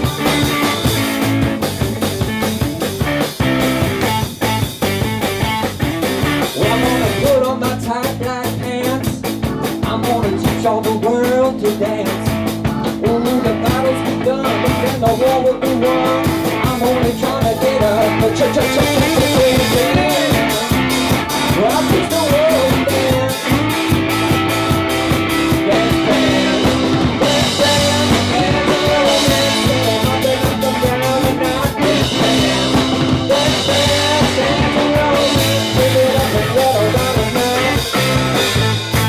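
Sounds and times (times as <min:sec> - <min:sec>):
bass guitar: 0:00.0 - 0:39.0
drum kit beat: 0:00.0 - 0:39.0
electric guitars: 0:00.0 - 0:39.0
wavering lead guitar line: 0:00.0 - 0:39.0.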